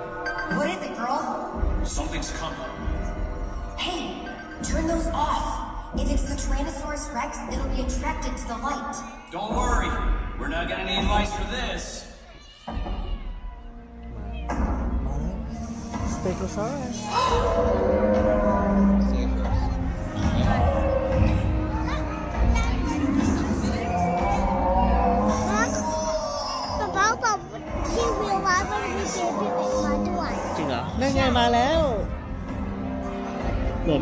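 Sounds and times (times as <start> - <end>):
children calling out: 23.9 - 30.5.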